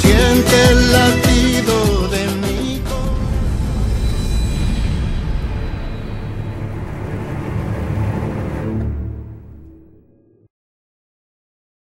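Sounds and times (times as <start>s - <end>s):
music: 0.0s - 10.3s
deep rumbling whoosh: 2.6s - 10.4s.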